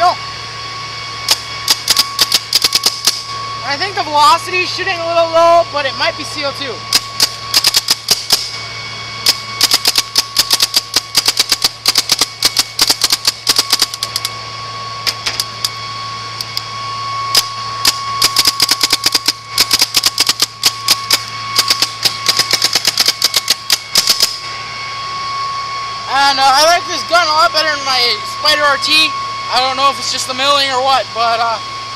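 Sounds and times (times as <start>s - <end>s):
steady hum: 0.0s - 31.9s.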